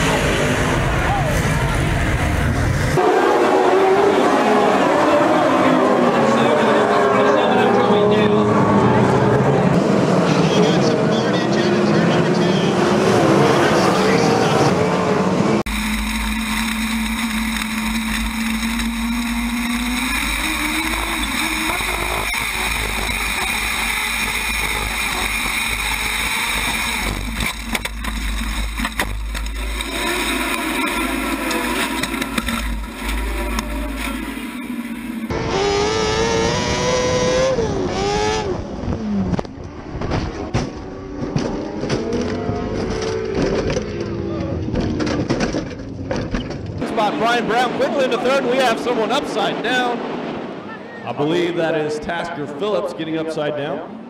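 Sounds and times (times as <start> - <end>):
sprint car engines racing: 0.0 - 54.0.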